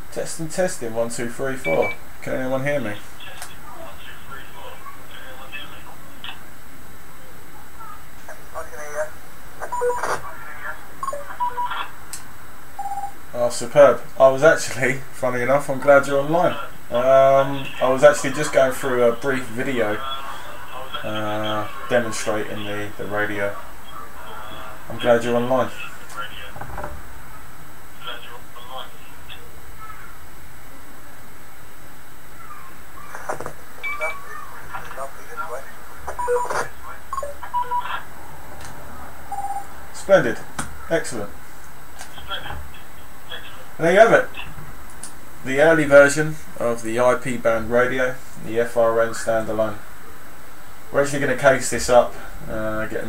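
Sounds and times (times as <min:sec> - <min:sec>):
steady hiss: 0:00.0 - 0:08.3, 0:11.8 - 0:37.2, 0:38.0 - 0:53.0
voice over radio speaker: 0:01.3 - 0:06.5, 0:07.1 - 0:12.1, 0:14.7 - 0:29.8, 0:32.5 - 0:38.1, 0:42.0 - 0:44.6
short beep: 0:01.6 - 0:02.0
short steady beep: 0:01.6 - 0:02.0, 0:09.7 - 0:10.0, 0:36.2 - 0:37.8, 0:39.3 - 0:39.7
radio clicks: 0:03.3 - 0:03.6.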